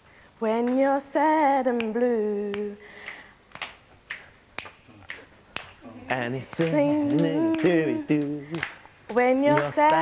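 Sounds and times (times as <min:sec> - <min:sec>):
person singing unaccompanied: 0:00.4 - 0:02.8, 0:05.8 - 0:10.0
finger snaps: 0:01.8 - 0:09.7.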